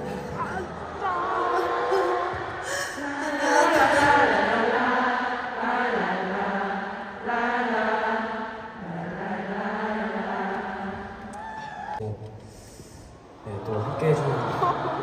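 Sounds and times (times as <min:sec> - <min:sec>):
voices singing in unison: 0:00.0 - 0:11.7.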